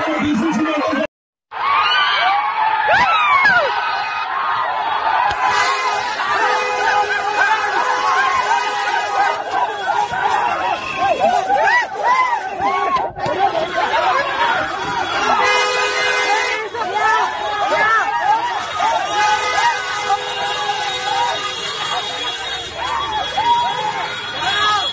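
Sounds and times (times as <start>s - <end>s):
crowd cheering and shouting: 0.0s - 24.9s
high calls and whoops: 9.2s - 13.2s, 20.5s - 24.9s.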